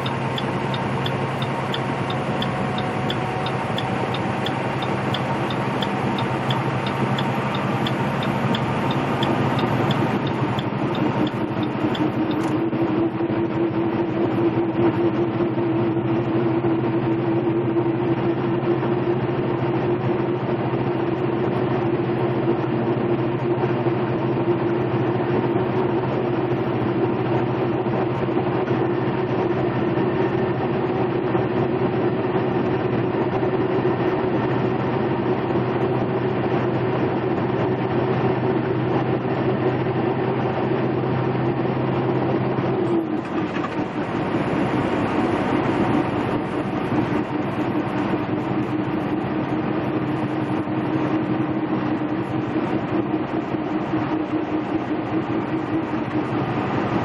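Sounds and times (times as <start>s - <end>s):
tyre and road noise: 0.0s - 12.8s
diesel engine running under load: 0.0s - 57.0s.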